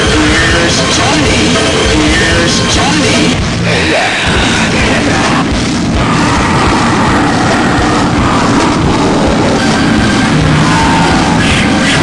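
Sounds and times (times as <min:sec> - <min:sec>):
heavy rock music: 0:00.0 - 0:12.0.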